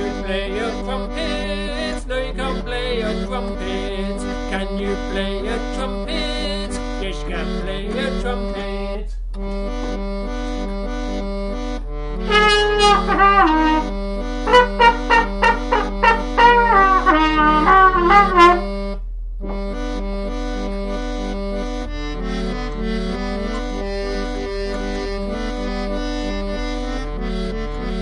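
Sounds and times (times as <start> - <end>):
organ bass and chord accompaniment: 0.0 - 28.0
brass lead bending notes: 9.6 - 21.1.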